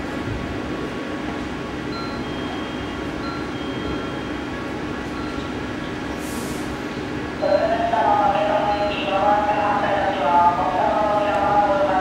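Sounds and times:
train equipment hum and hiss: 0:00.0 - 0:12.0.

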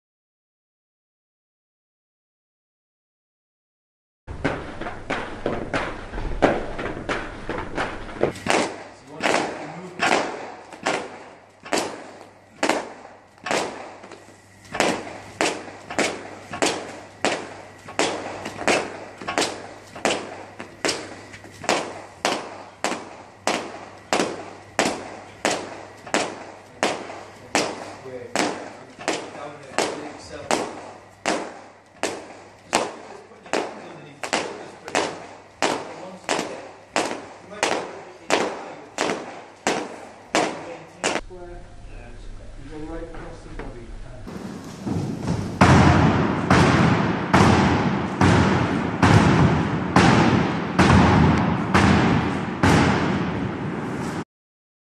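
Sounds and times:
battle rope slapping floor: 0:04.3 - 0:41.2, 0:44.3 - 0:54.2.

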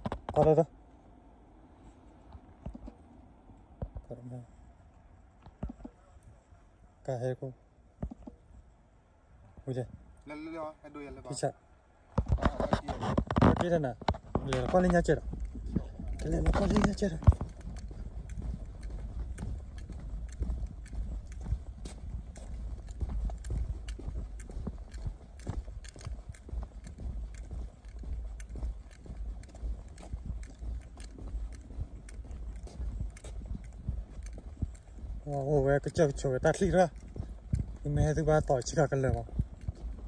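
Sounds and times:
footsteps on concrete: 0:12.2 - 0:40.0.

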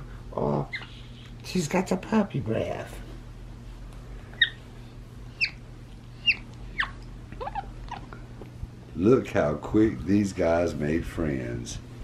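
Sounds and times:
monkey high-pitched chirps: 0:00.7 - 0:01.0, 0:04.4 - 0:04.6, 0:05.3 - 0:05.6, 0:06.2 - 0:08.1
monkey soft squeaks: 0:00.7 - 0:01.0, 0:04.4 - 0:04.6, 0:05.4 - 0:05.6, 0:06.2 - 0:08.1.

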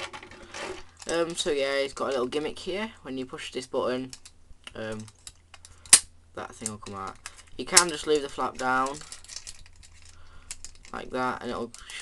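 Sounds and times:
toy handling noise: 0:06.6 - 0:12.0.

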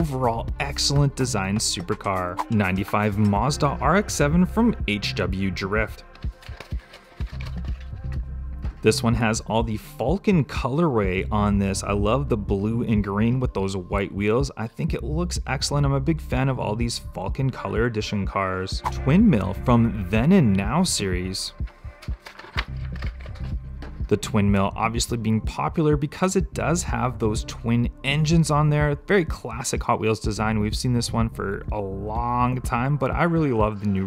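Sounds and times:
background music: 0:00.0 - 0:34.0
plastic blister pack tearing: 0:06.2 - 0:07.9.

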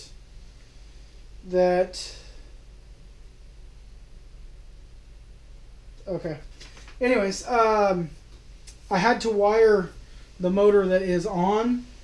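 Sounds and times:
person breathing: 0:09.9 - 0:10.4.

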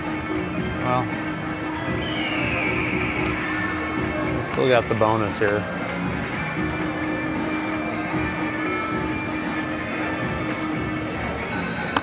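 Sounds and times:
slot machine electronic music: 0:00.8 - 0:12.0.

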